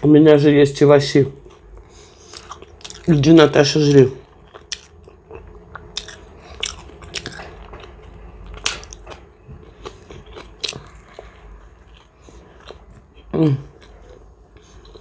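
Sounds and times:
wet chewing and mouth smacks: 0:04.3 - 0:15.0.

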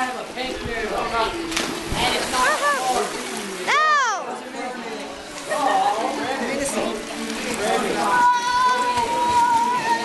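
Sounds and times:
water splashing in pool: 0:00.9 - 0:04.2, 0:05.3 - 0:10.0.

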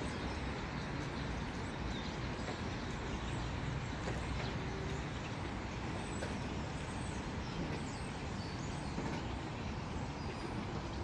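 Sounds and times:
low uneven rumble: 0:00.0 - 0:11.0.

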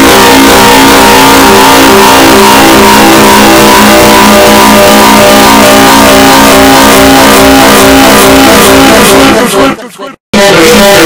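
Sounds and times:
distorted droning tones: 0:00.0 - 0:11.0.

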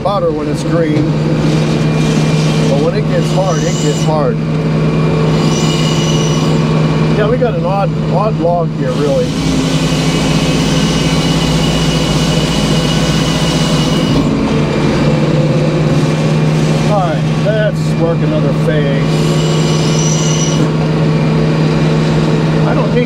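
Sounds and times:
engine humming: 0:00.0 - 0:23.0
circular saw blade cutting log: 0:01.4 - 0:04.4, 0:05.3 - 0:06.8, 0:08.8 - 0:15.2, 0:15.8 - 0:20.8.

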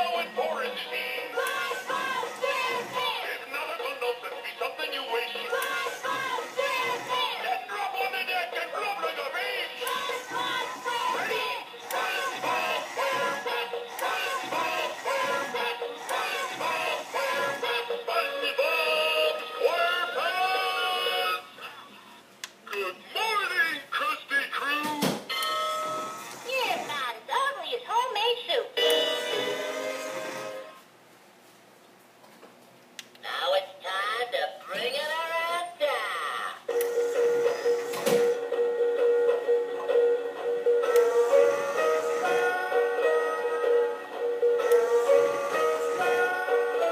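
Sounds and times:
toy clock music with voices: 0:00.0 - 0:21.4, 0:26.4 - 0:30.4.

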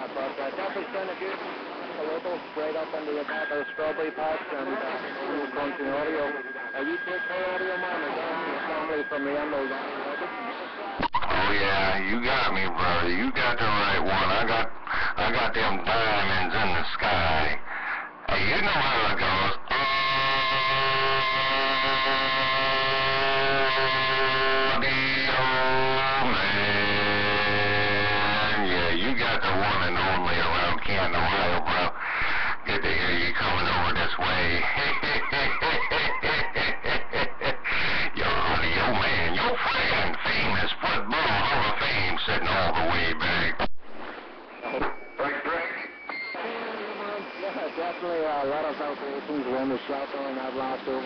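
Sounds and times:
garbled overlapping radio voices: 0:00.0 - 0:51.0
radio pitched tones: 0:00.0 - 0:51.0
weak broken radio signals: 0:00.0 - 0:51.0.

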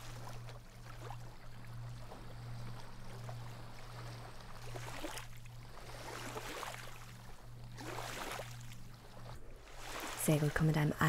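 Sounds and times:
small waves lapping on shore: 0:00.0 - 0:11.0
steady low hum: 0:00.0 - 0:11.0.

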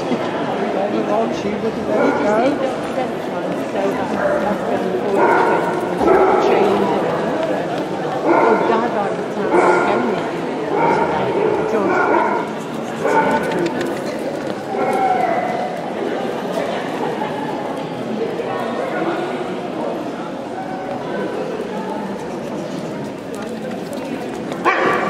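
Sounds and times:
people talking in a large hall: 0:00.0 - 0:25.0
dog barking: 0:05.2 - 0:06.8, 0:08.2 - 0:08.8, 0:09.5 - 0:10.1, 0:10.7 - 0:13.6, 0:24.6 - 0:25.0.

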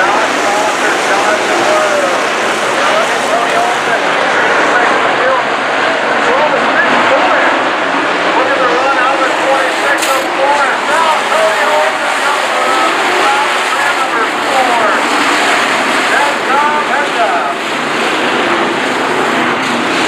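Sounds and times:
race car engines roaring: 0:00.0 - 0:20.0.

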